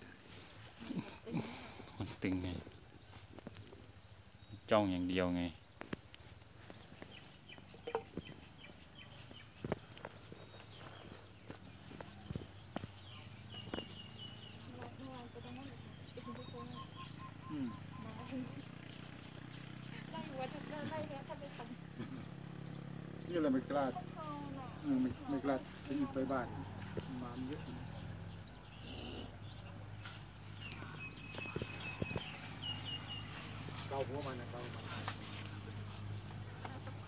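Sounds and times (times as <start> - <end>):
small bird chirping: 0.0 - 37.0.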